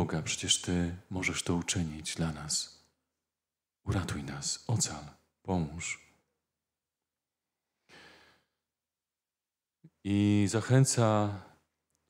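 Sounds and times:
faint breath: 7.8 - 8.6.

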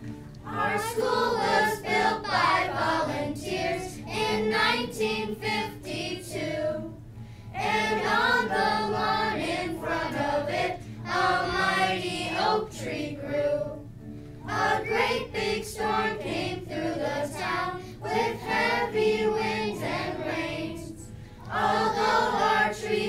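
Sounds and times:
children singing together: 0.4 - 6.9, 7.6 - 13.9, 14.5 - 23.0.

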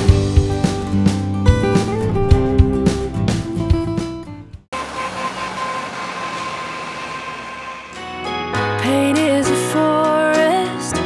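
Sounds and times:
bus engine and road noise: 4.8 - 8.0
faint high whine: 4.8 - 8.1.

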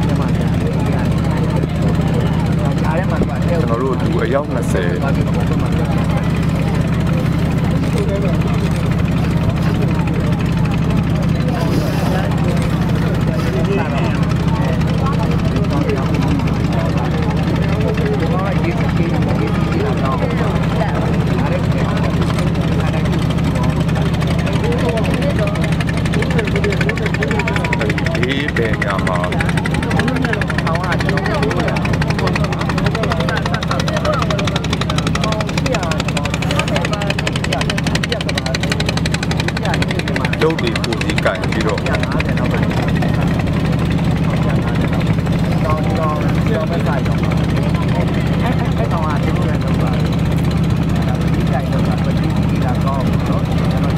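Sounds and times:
boat engine humming: 0.0 - 53.9
people talking: 0.0 - 53.9.

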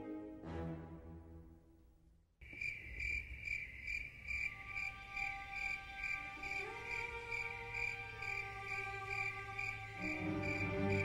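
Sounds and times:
soft sustained musical tones: 0.0 - 1.8, 4.5 - 11.0
cricket-like chirping: 2.4 - 11.0.

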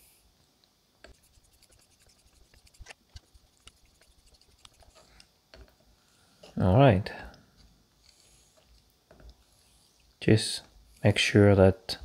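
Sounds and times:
small ticks: 1.0 - 5.3
razor scraping on wet stone: 1.1 - 5.0.

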